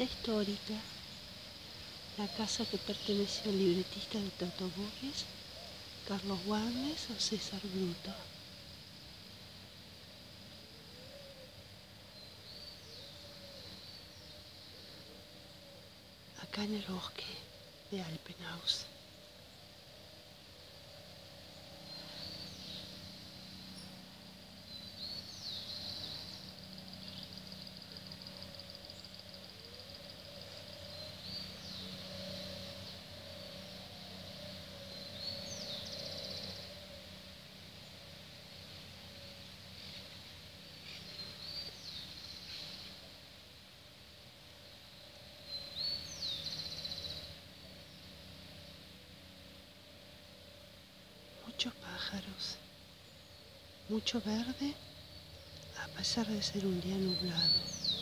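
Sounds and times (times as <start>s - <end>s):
steady low hum: 0.0s - 58.0s
birds calling: 20.5s - 43.2s, 45.3s - 49.2s, 51.2s - 58.0s
bird trill: 24.7s - 36.9s, 51.4s - 58.0s.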